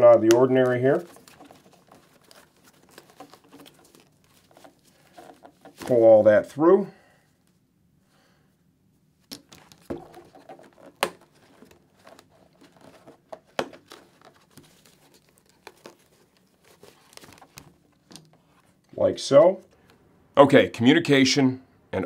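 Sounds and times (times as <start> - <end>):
fabric rustling and crinkling: 0.3 - 6.2, 9.4 - 18.8.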